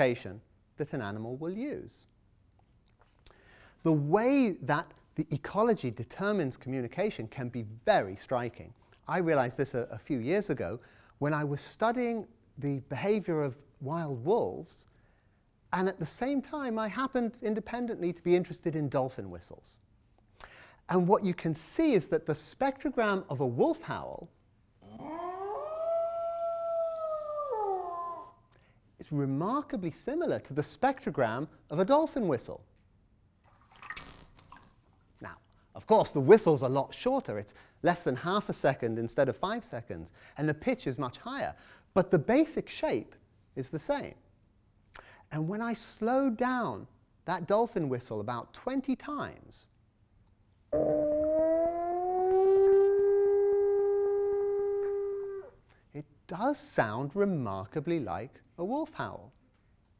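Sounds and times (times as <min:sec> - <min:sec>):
wolf howling: 0:24.8 - 0:28.4, 0:50.8 - 0:55.6
slowed dolphin whistle: 0:34.0 - 0:34.7, 0:50.8 - 0:55.4.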